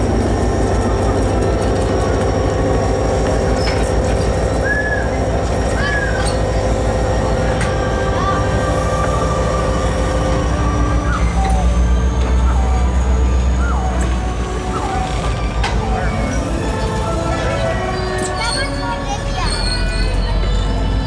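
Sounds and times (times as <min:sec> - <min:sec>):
train coaches rumbling on rails: 0:00.0 - 0:21.0.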